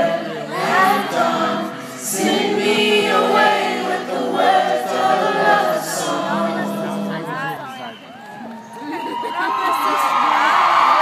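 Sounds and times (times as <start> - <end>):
crowd singing along: 0.0 - 7.9.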